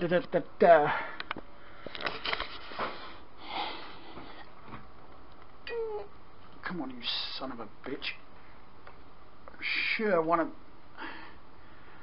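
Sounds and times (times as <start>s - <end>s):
soft breaths: 0.8s - 4.8s, 10.9s - 12.0s.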